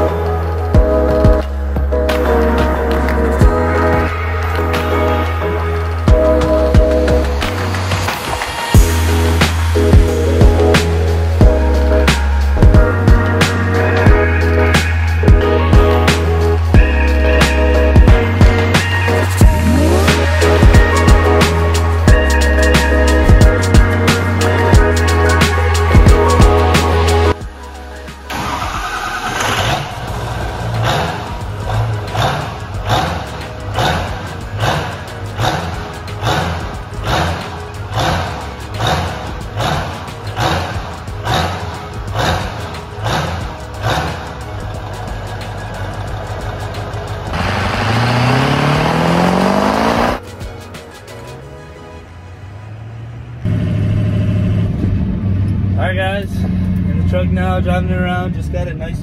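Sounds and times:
music with steady beat: 0.0 - 28.3, 30.5 - 52.1
diesel engine revving: 0.0 - 59.0.

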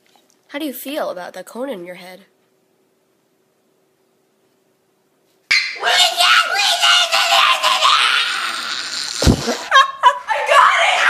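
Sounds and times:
faint steady hum: 0.0 - 11.0
loud high-pitched cry: 5.5 - 9.5, 10.1 - 11.0.

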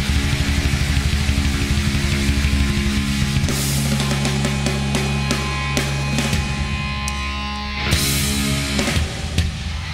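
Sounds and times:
hard rock band playing live: 0.0 - 9.9.

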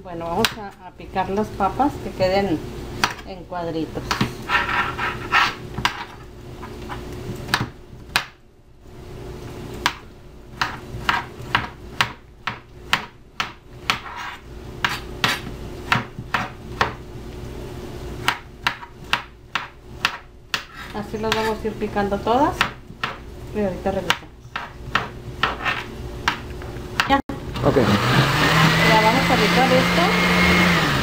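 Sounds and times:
knife chopping on cutting board: 9.8 - 17.0, 18.2 - 21.6, 22.5 - 23.2, 24.0 - 26.4.

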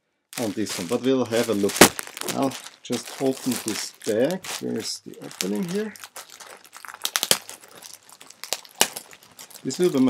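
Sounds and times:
packaging bag crinkling: 0.3 - 10.0.

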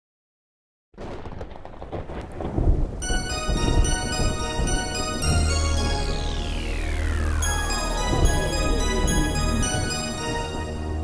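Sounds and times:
thunder rumble: 1.0 - 10.8
rain hiss with crackles: 1.0 - 11.0.

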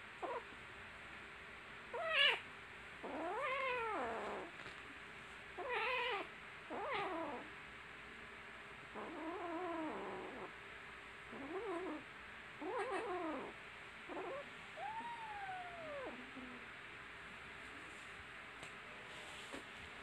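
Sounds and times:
kittens meowing: 5.6 - 7.5, 12.6 - 16.4.

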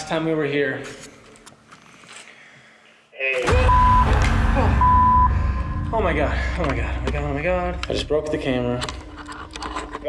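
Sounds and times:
short beeps: 3.4 - 7.0.

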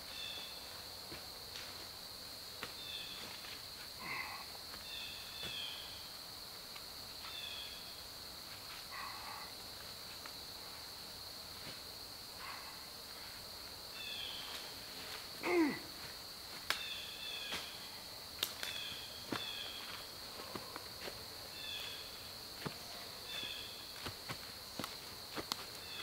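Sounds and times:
high insect drone: 0.0 - 26.0
footsteps on leaf litter: 18.6 - 26.0.

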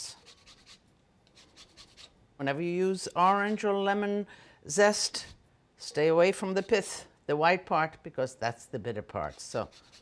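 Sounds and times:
grater scraping lemon zest: 0.0 - 2.1, 9.1 - 10.0.

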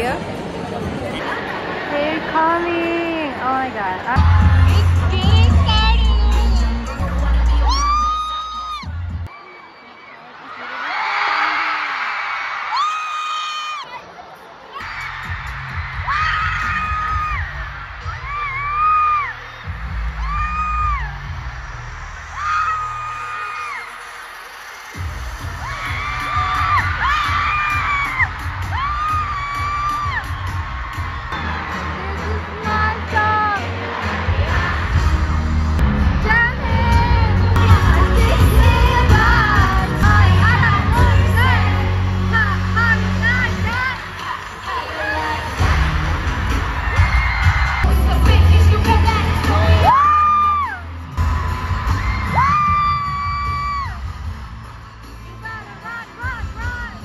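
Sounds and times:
live pop concert music: 0.0 - 12.0, 14.7 - 57.0
crowd cheering and screaming: 0.0 - 57.0
heavy bass beat: 4.2 - 9.3, 14.9 - 23.2, 24.9 - 44.3.

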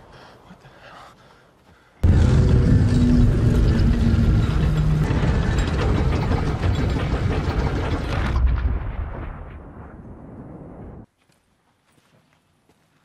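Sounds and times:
stone doors grinding shut: 2.0 - 9.0.

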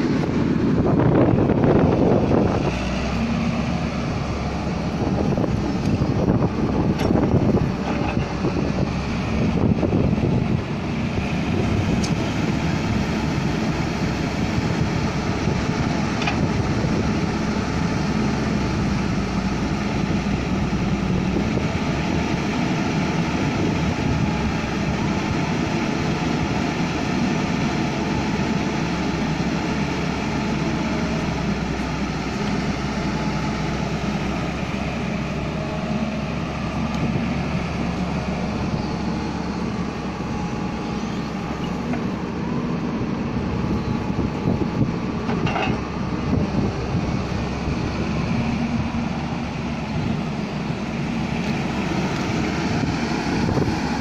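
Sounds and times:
excavator diesel engine running: 0.0 - 54.0.

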